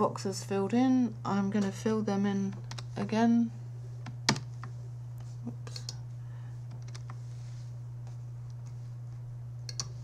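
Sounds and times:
steady low hum: 0.0 - 10.0
computer keyboard clicks: 6.7 - 7.1.

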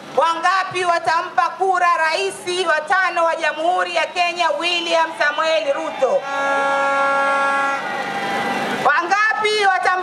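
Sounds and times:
crowd shouting: 3.0 - 9.2
steady horn note: 6.2 - 8.0.

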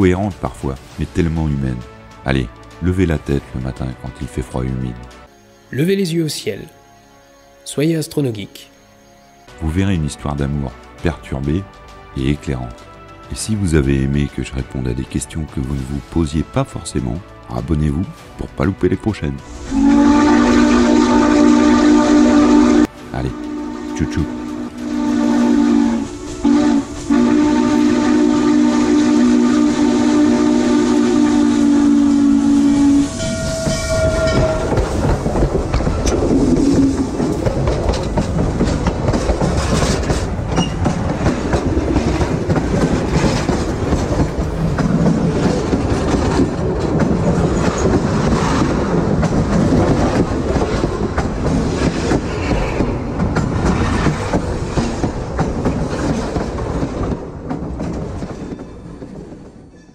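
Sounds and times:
steam locomotive whistle: 19.4 - 35.1
train wheels clattering on rails: 33.2 - 59.9.

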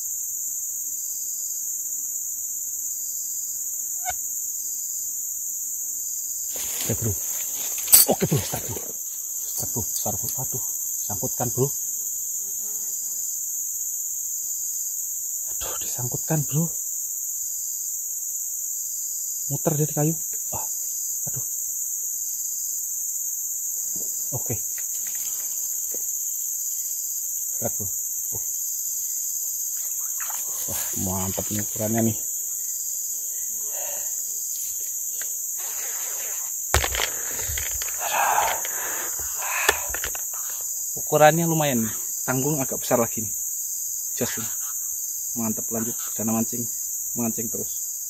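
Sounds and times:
insects buzzing: 0.0 - 48.0
rustling handling noise: 6.5 - 9.0, 36.8 - 40.6.

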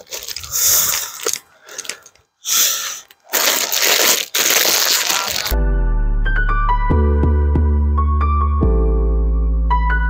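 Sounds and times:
plastic crinkling and rustling: 0.0 - 2.2, 3.0 - 5.6
background music with held notes: 5.5 - 10.0.

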